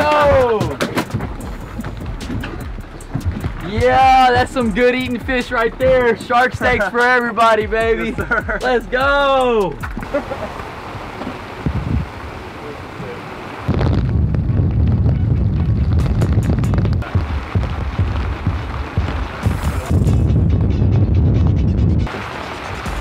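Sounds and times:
background music with heavy bass: 0:00.0 - 0:10.2, 0:14.6 - 0:23.0.

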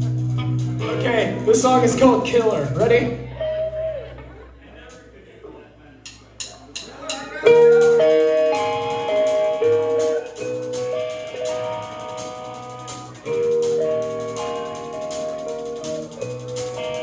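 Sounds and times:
rock band playing: 0:00.0 - 0:05.1, 0:06.2 - 0:17.0
drumstick clicks: 0:06.0 - 0:07.0.

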